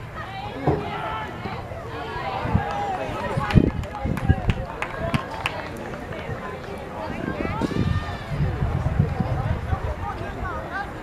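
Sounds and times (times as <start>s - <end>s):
people shouting and calling out: 0.0s - 11.0s.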